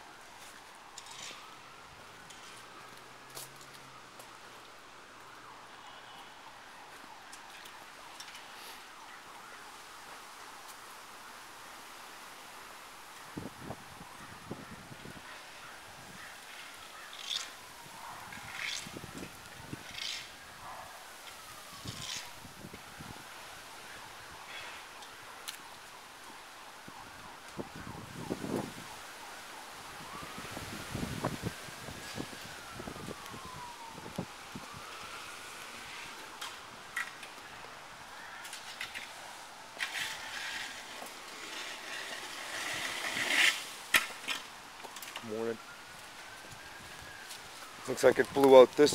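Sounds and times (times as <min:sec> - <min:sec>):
faint emergency siren wailing: 0:00.0 - 0:48.9.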